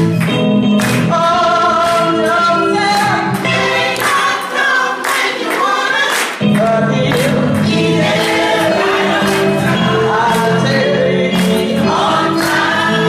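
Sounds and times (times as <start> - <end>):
choir singing gospel: 0.8 - 13.0.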